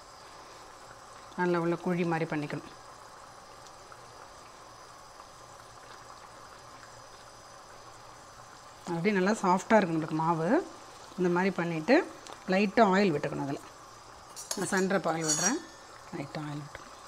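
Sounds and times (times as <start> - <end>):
faint hiss: 0.0 - 17.0
woman speaking: 8.9 - 13.6, 14.6 - 16.8.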